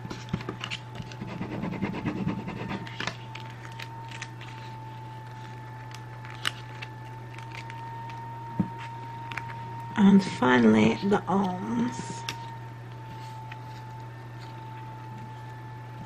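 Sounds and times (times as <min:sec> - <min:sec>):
tape and vinyl crinkling: 0:00.0 - 0:01.2, 0:02.6 - 0:10.0, 0:10.8 - 0:16.0
steady hum: 0:00.0 - 0:16.0.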